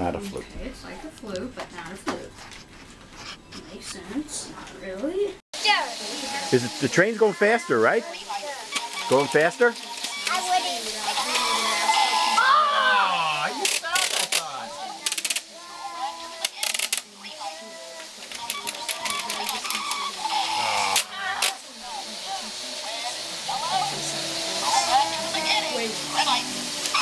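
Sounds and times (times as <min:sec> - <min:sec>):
children chattering: 0:03.8 - 0:27.0
plastic toy clicks: 0:13.6 - 0:15.5, 0:16.4 - 0:17.1, 0:18.3 - 0:19.8.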